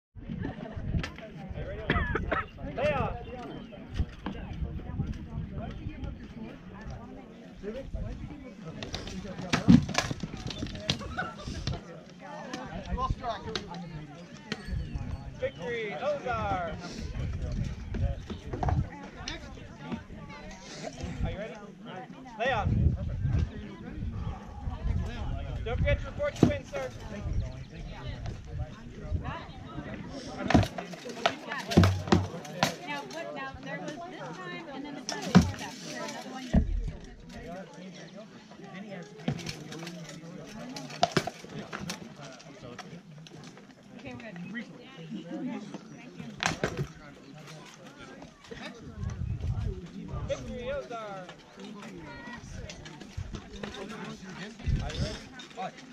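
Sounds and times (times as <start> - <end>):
people talking: 0.2 - 55.9
weapons knocking on shields: 30.4 - 32.9, 35.1 - 35.7.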